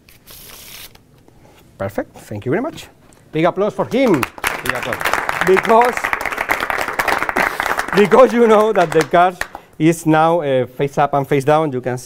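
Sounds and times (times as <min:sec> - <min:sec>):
people applauding: 0:03.9 - 0:09.7.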